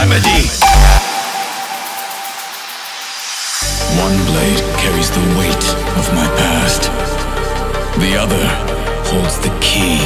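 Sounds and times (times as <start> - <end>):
held high synth tone: 0.6 - 3.9
hissing synth noise sweep: 0.6 - 3.9.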